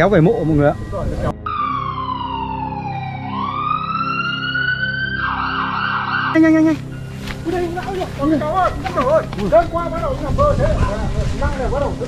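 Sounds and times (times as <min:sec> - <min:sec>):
siren-like alert tone: 0:01.4 - 0:06.7.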